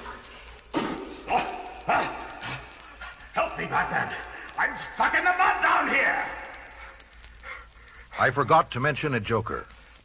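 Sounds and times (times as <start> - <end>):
man shouting: 1.3 - 2.4, 3.4 - 6.6.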